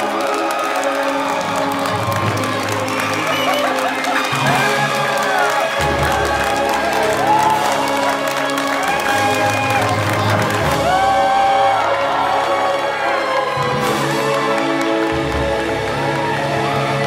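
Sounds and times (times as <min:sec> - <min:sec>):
audience clapping and cheering: 0:00.0 - 0:17.0
film score music: 0:00.0 - 0:17.0.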